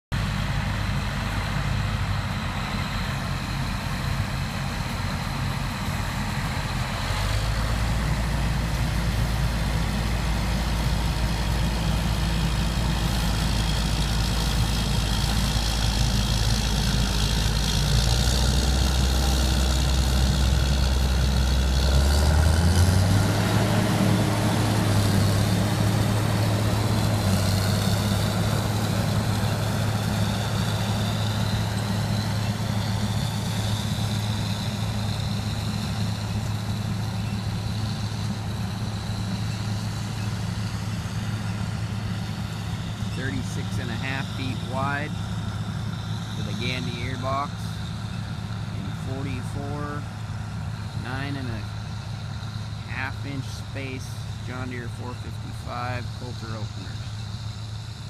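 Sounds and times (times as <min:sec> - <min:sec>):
tractor diesel engine running: 0:00.1 - 0:58.0.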